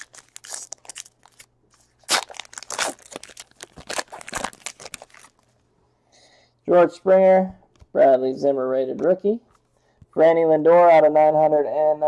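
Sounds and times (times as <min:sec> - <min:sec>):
wrapper tearing and crinkling: 0:00.0 - 0:05.5.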